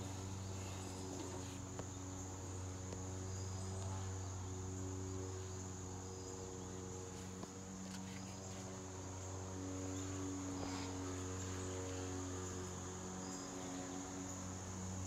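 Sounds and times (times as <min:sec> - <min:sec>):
crickets chirping: 0:00.0 - 0:15.0
steady low hum: 0:00.0 - 0:15.0.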